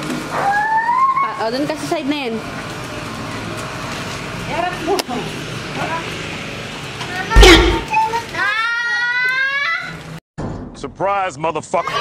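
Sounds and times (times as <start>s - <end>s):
child's voice: 7.1s - 10.0s, 11.8s - 12.0s.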